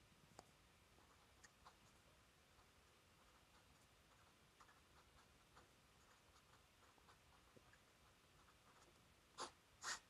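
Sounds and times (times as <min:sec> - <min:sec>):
pen scratching on paper: 0:02.6 - 0:10.0
pen strokes on paper: 0:02.6 - 0:10.0.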